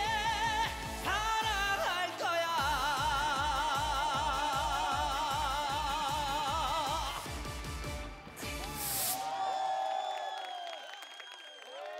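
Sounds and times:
crowd cheering and screaming: 8.0s - 11.9s.

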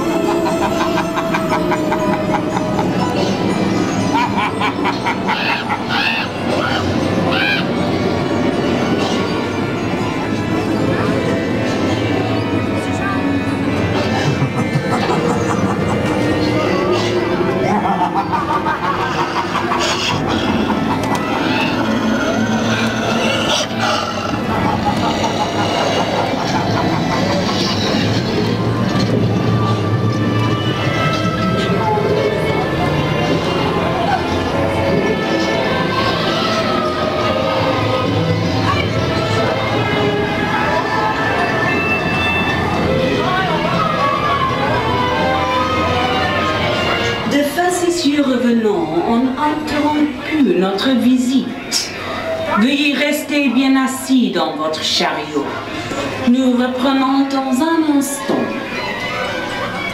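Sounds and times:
dark ride music over speakers: 0.0s - 59.9s
voices: 0.0s - 59.9s.

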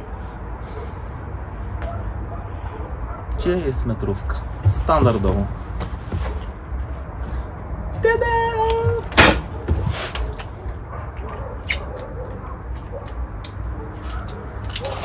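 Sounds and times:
tools rummaged and knocking: 8.9s - 10.3s.

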